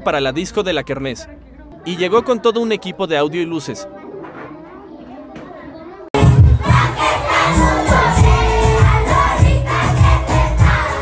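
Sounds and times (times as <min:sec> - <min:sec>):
bass-heavy music from speaker: 0:06.2 - 0:11.0.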